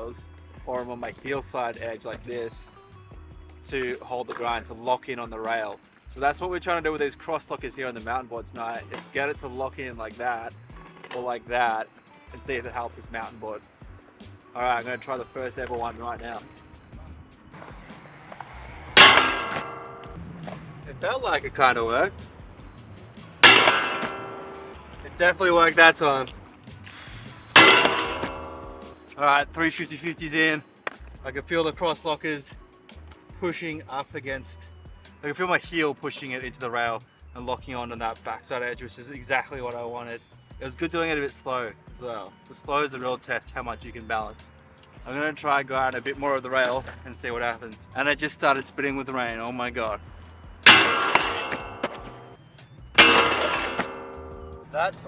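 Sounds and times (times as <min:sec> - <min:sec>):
board clanging on metal bar: 0:19.0 - 0:20.2, 0:23.4 - 0:26.0, 0:27.6 - 0:29.0, 0:50.7 - 0:52.4, 0:53.0 - 0:54.7.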